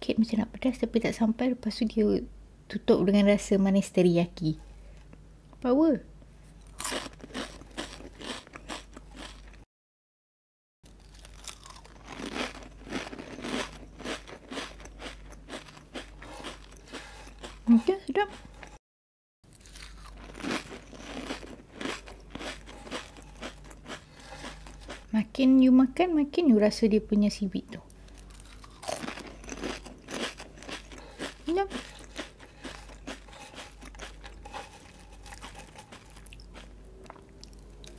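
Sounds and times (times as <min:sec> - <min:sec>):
crunching and chewing crisps: 0:06.6 - 0:09.6, 0:10.9 - 0:18.8, 0:19.5 - 0:25.1, 0:28.1 - 0:37.9.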